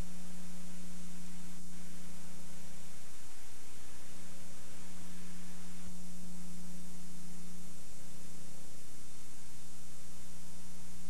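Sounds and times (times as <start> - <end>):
background hiss: 0.0 - 11.0
steady electrical hum: 0.0 - 11.0.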